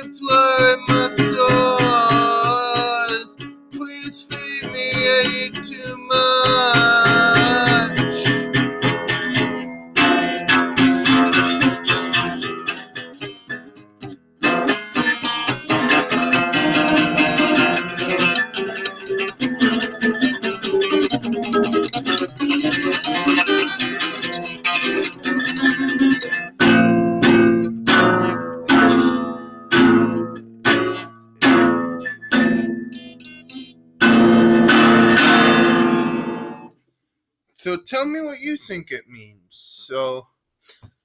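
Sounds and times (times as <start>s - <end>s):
acoustic guitar strumming: 0.0s - 36.8s.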